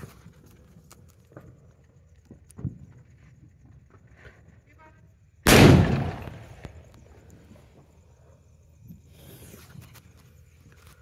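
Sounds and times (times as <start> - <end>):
firecracker bang: 5.5 - 6.9.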